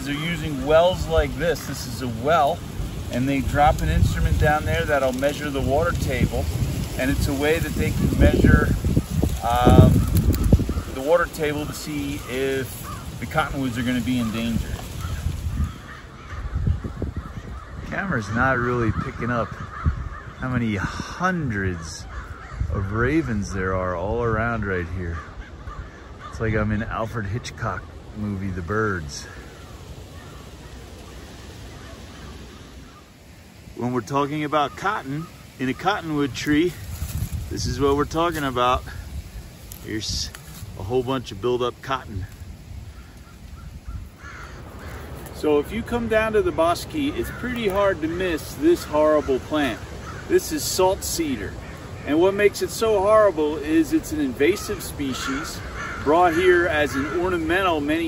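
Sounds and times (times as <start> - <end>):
ravens cawing: 0.0 - 24.0, 24.6 - 58.0
wind rumbling on microphone: 0.0 - 58.0.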